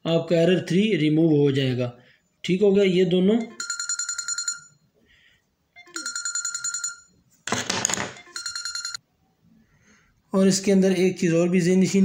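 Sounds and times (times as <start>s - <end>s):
electronic phone ringtone: 3.4s - 4.9s, 5.8s - 7.2s, 7.9s - 9.0s.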